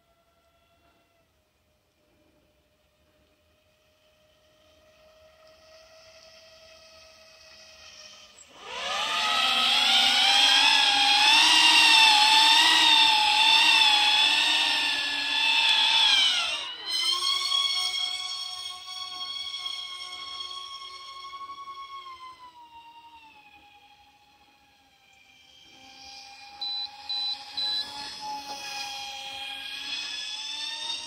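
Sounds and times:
electric motors and propellers whining: 0:00.0 - 0:31.0.

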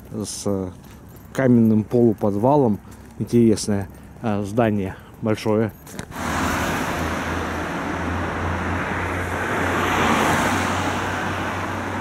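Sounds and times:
low engine hum: 0:06.1 - 0:12.0
tyres hissing on wet road: 0:06.1 - 0:12.0.

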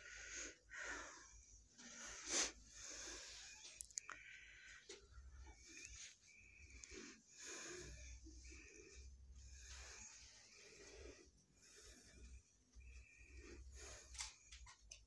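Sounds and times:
soft breathing close to microphone: 0:00.0 - 0:15.0.

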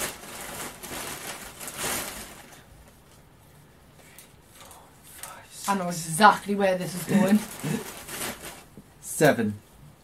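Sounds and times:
gift bag rustling: 0:00.0 - 0:03.0, 0:06.8 - 0:08.8.

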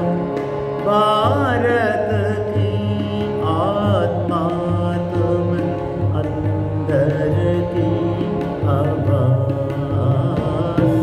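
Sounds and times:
person singing devotional song: 0:00.0 - 0:11.0.

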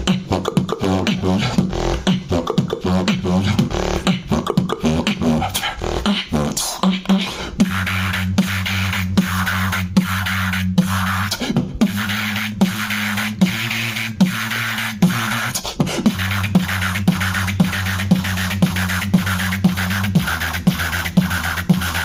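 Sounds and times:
beatboxing vocal drum strokes: 0:00.0 - 0:22.0
humming low vocal bass line: 0:00.0 - 0:22.0.

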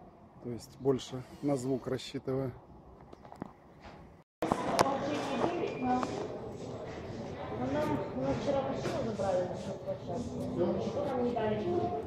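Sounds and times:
people chattering: 0:04.4 - 0:12.0.

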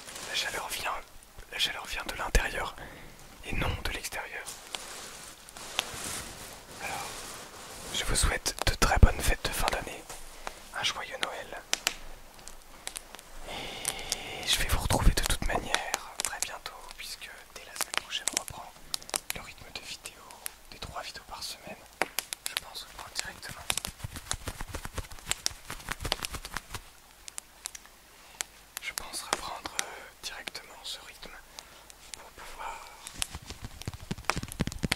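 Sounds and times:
cloth rustling against microphone: 0:00.0 - 0:34.9
person whispering: 0:00.2 - 0:04.6, 0:06.8 - 0:07.2, 0:07.9 - 0:11.7, 0:13.4 - 0:23.9, 0:28.8 - 0:33.2.

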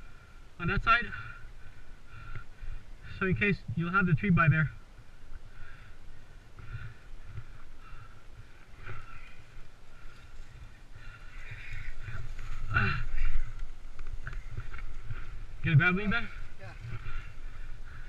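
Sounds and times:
faint trail noise: 0:00.0 - 0:18.0.

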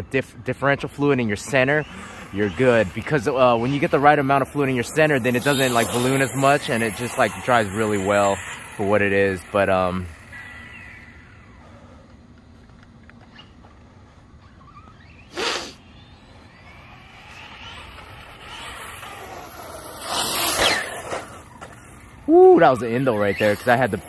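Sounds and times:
rc truck motor whine: 0:00.0 - 0:24.0
rc truck braking hard: 0:01.3 - 0:11.9, 0:14.4 - 0:24.0.

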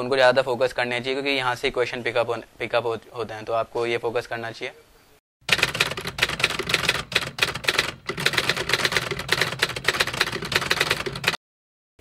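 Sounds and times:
typewriter keys clattering: 0:05.5 - 0:11.4.

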